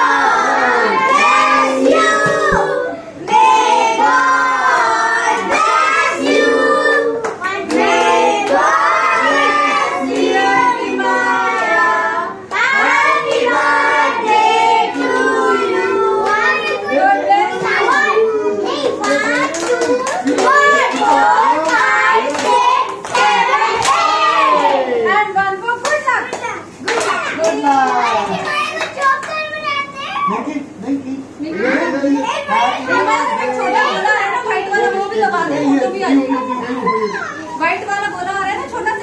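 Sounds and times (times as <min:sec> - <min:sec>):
group singing a celebration song: 0:00.0 - 0:25.9
people clapping: 0:18.7 - 0:24.9, 0:25.8 - 0:29.6.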